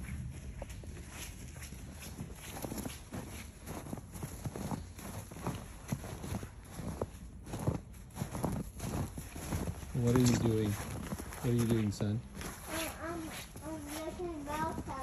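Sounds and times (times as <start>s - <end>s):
footsteps in snow: 0.0s - 15.0s.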